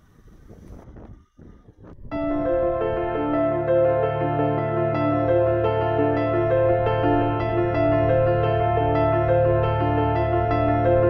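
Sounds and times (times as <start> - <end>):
wind noise on microphone: 0.0 - 3.5
low rumble: 0.0 - 11.0.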